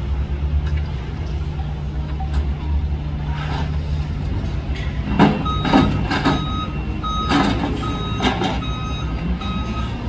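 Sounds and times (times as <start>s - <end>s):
engines idling: 0.0s - 10.0s
vehicle reversing alarm beeping: 5.2s - 10.0s.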